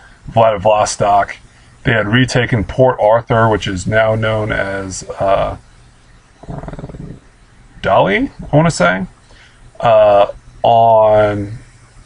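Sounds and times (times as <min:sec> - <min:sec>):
man speaking: 0:00.3 - 0:05.6, 0:07.8 - 0:09.1, 0:09.8 - 0:11.7
man's creaky hesitation sound: 0:06.4 - 0:07.4.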